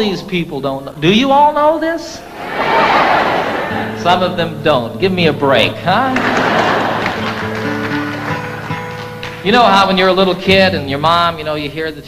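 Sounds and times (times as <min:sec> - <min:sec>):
twelve-string acoustic guitar notes: 0:03.7 - 0:06.4.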